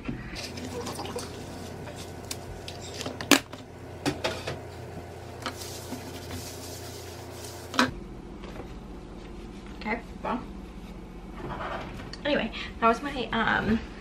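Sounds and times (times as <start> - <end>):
wipe rubbing tabletop: 5.4 - 7.9.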